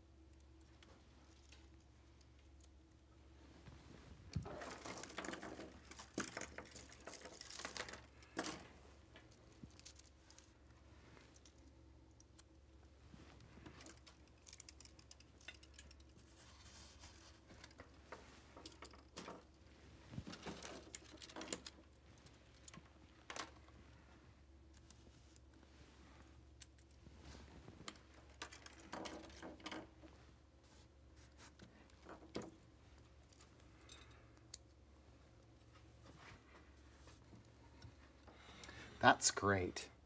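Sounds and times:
low steady hum: 0.0 - 40.0
plastic lights clicking and rustling: 0.1 - 3.0, 4.2 - 23.9, 26.2 - 30.2, 31.5 - 38.9.

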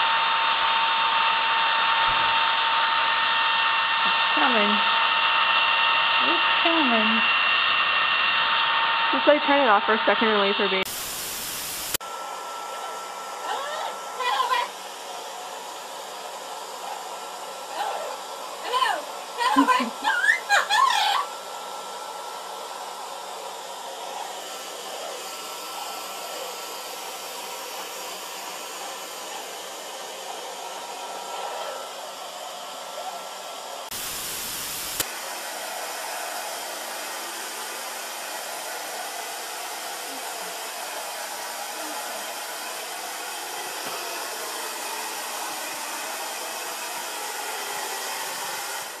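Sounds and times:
hair dryer blowing: 0.0 - 49.0
static hiss burst: 9.3 - 12.0, 33.9 - 36.3.

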